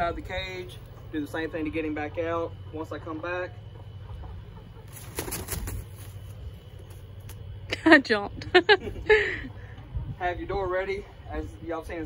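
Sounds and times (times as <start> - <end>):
rooster wings flapping: 4.8 - 7.4.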